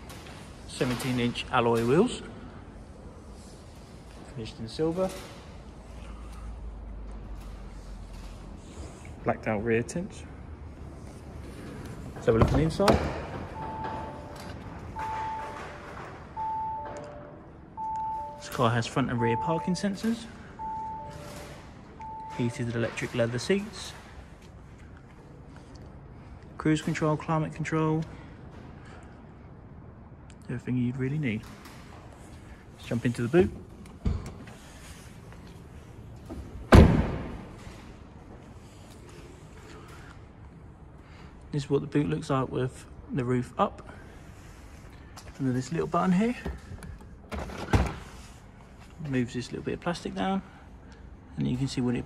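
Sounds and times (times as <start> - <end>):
car warning chime: 13.5 - 22.8.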